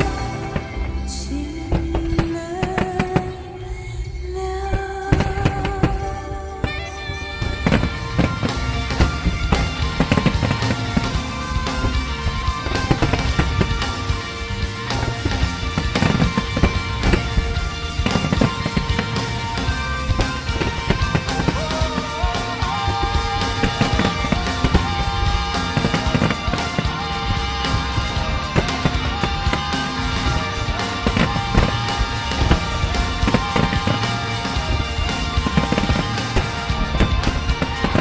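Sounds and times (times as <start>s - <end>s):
loud music: 0.0s - 38.0s
fireworks bangs: 5.1s - 38.0s.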